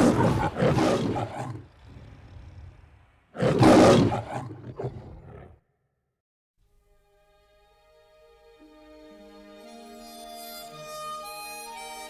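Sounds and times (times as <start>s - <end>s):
lion growling low: 0.0s - 5.6s
lion roaring: 0.0s - 5.6s.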